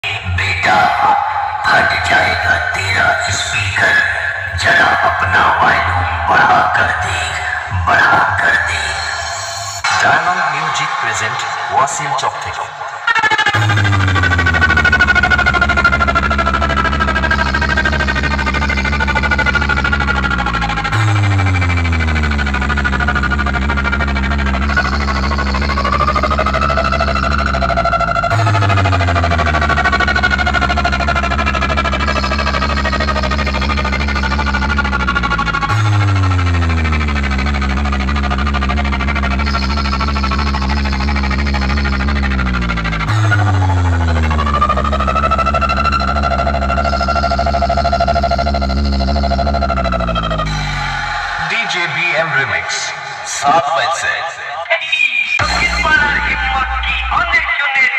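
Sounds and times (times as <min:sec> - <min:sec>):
loud remix music through speakers: 0:00.0 - 0:57.9
held high synth tones: 0:04.3 - 0:54.6, 0:55.4 - 0:57.9
deep sliding bass note: 0:13.5 - 0:51.6, 0:55.4 - 0:57.4.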